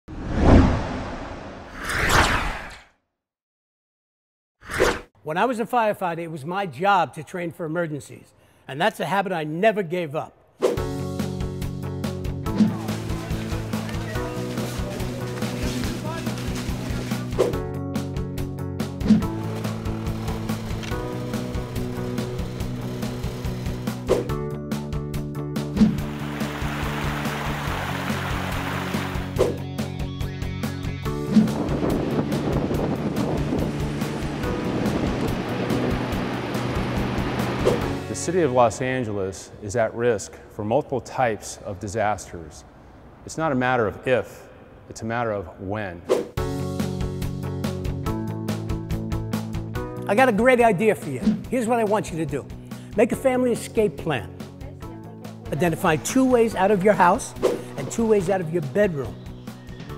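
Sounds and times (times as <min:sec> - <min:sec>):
deep whoosh: 0:00.1 - 0:02.8
rushing churning water: 0:25.9 - 0:29.4, 0:33.0 - 0:37.9.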